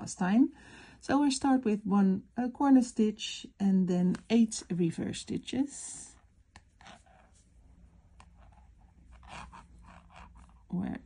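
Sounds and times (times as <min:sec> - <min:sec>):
low steady hum: 0:00.0 - 0:11.0
crochet hook scratching yarn: 0:06.0 - 0:11.0.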